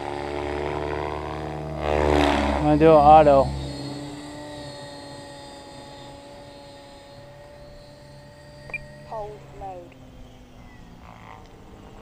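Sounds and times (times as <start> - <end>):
helicopter rotor blades whirring: 0.0 - 12.0.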